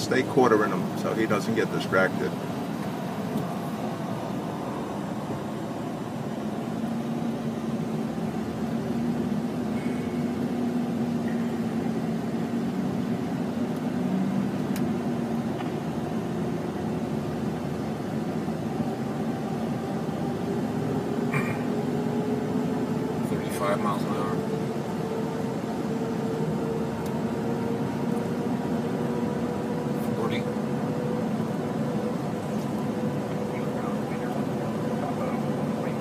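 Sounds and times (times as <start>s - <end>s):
engine and tyre hum in vehicle cabin: 0.0s - 36.0s.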